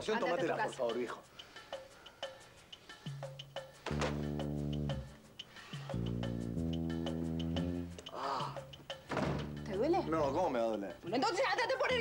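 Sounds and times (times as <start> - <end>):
music cue: 2.2 - 8.8.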